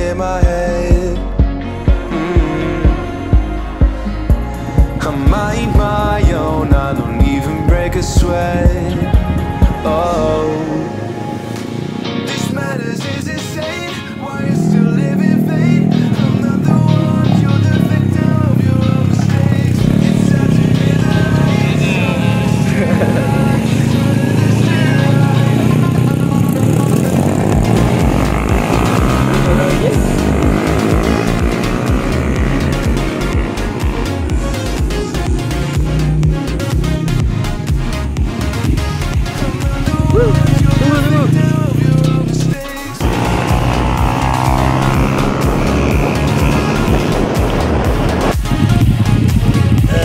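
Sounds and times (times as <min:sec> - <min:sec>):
background music with steady beat: 0:00.0 - 0:50.0
motorcycle engines revving: 0:00.0 - 0:50.0
road noise: 0:00.0 - 0:50.0.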